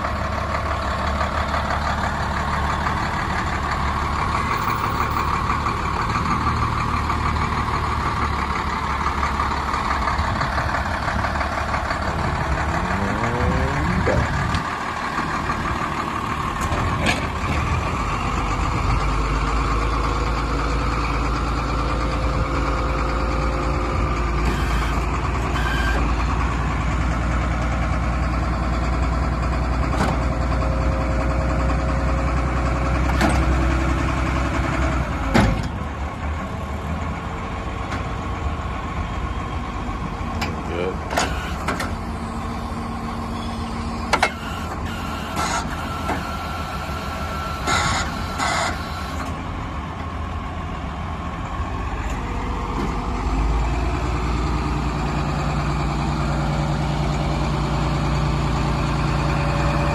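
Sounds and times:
diesel truck engine idling: 0:00.0 - 0:59.9.

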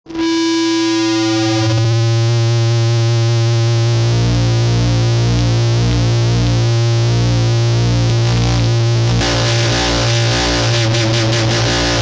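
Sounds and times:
steady bass tone: 0:00.1 - 0:12.0
held synthesizer chord: 0:04.0 - 0:12.0.

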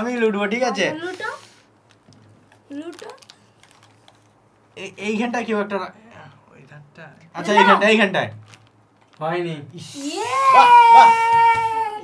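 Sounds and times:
plastic packet crackling: 0:01.7 - 0:04.4, 0:08.3 - 0:09.3.

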